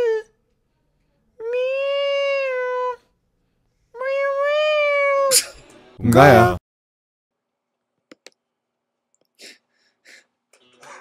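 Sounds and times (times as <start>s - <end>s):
high meow-like voice: 1.4s - 3.0s.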